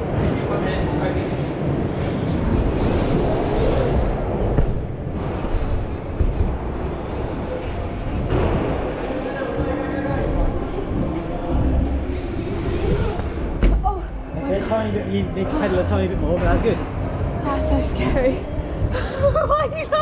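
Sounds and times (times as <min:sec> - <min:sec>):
bike tyres rumbling on wood: 0:02.0 - 0:14.2.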